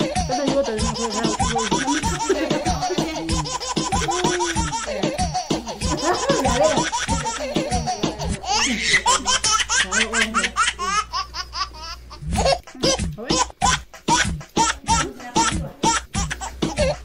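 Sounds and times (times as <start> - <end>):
women laughing: 0.0 - 13.4.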